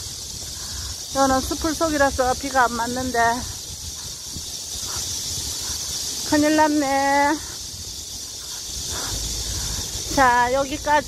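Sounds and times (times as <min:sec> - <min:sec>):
cicadas buzzing: 0:00.0 - 0:11.0.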